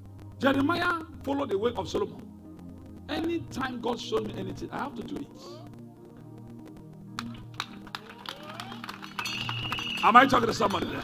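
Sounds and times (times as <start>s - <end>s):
soft music of low chords: 0.0s - 11.0s.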